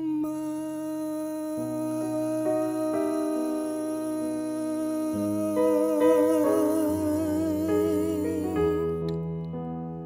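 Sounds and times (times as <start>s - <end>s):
man humming a long note: 0.0s - 9.3s
piano accompaniment: 0.0s - 10.0s.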